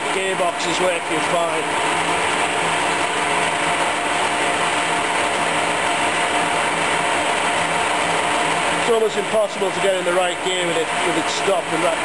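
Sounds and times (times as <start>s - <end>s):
lathe gear hum: 0.0s - 12.0s.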